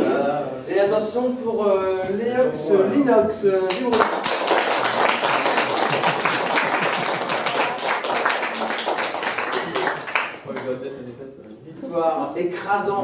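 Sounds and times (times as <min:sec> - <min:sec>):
audience clapping: 0:03.7 - 0:10.8.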